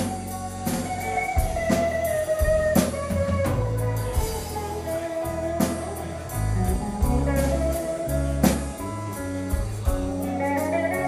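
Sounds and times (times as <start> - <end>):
bass guitar: 0.0 - 11.0
electric guitar lead notes: 0.0 - 11.0
drum kit hits: 5.6 - 11.0.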